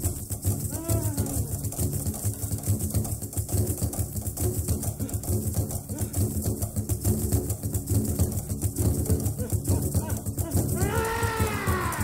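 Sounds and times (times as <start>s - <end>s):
rapid hand drumming: 0.0s - 12.0s.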